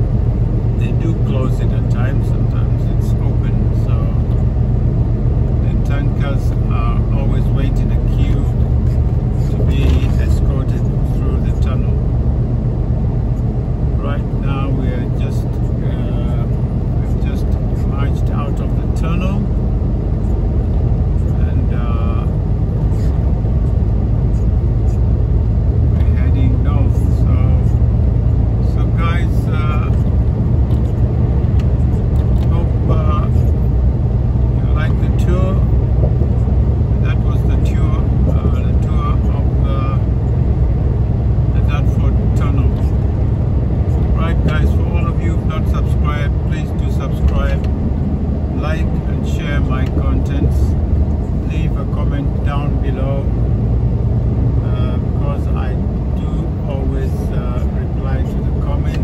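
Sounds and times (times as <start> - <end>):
vehicle engine and road rumble: 0.0 - 59.0
person talking: 5.6 - 12.0, 14.0 - 19.5, 26.0 - 27.8, 32.4 - 33.5, 37.0 - 40.1, 41.6 - 42.9, 44.0 - 47.7, 48.5 - 50.8, 54.6 - 59.0.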